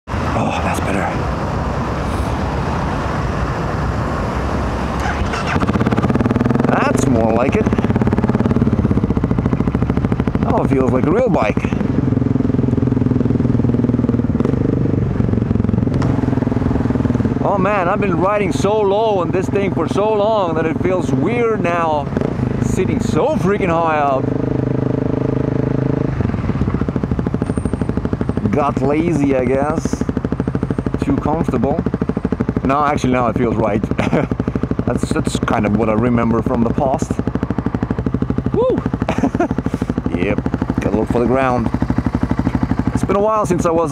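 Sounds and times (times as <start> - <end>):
motorcycle engine rumbling: 0.0 - 43.9.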